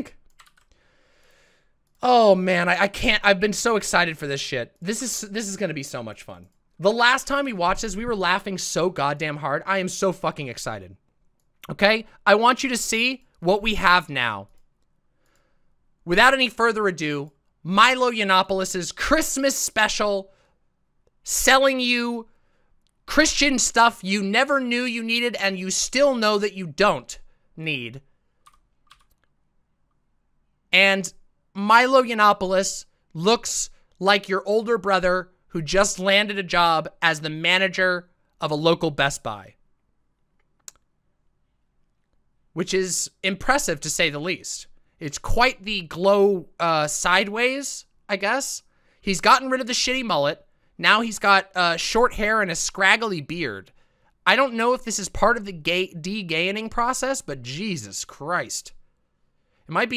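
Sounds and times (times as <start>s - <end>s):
keyboard clicks: 0.2s - 0.8s, 28.4s - 29.4s, 40.4s - 40.9s.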